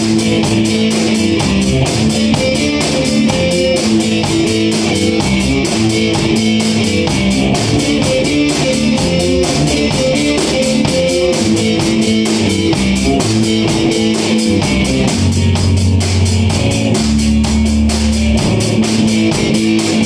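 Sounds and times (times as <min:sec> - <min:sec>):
drum kit beat: 0:00.0 - 0:20.0
electric guitars: 0:00.0 - 0:20.0.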